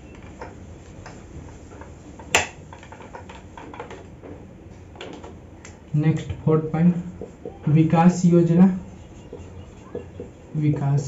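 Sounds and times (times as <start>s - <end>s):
duster rubbing on whiteboard: 7.0s - 11.0s.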